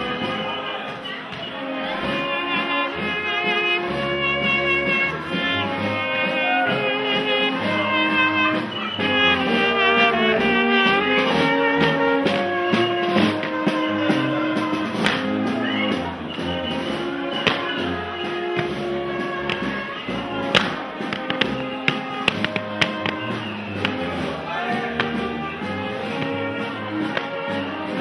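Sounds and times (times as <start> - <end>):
brass band playing: 0.0 - 28.0
trumpet: 0.0 - 28.0
tubas playing bass line: 0.0 - 28.0
drum: 3.9 - 28.0.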